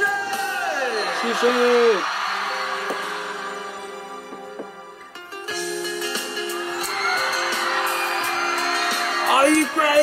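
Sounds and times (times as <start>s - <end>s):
live pop concert music: 0.0s - 10.0s.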